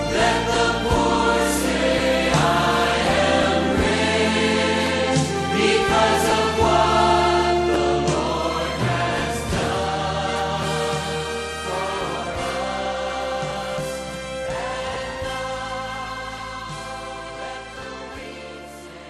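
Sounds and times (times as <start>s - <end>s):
choir singing: 0.0s - 19.0s
instrumental accompaniment: 0.0s - 19.0s.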